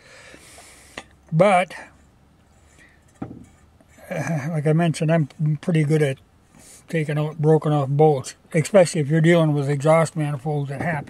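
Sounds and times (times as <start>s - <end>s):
short thump: 3.1s - 3.6s.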